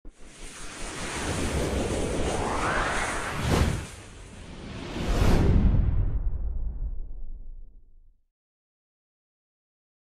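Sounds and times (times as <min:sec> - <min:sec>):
rush of noise: 0:00.1 - 0:07.2.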